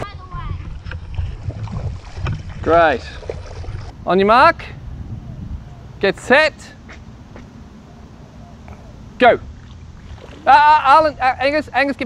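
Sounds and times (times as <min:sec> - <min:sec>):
wind rumbling on microphone: 0:00.0 - 0:06.0, 0:06.8 - 0:11.8.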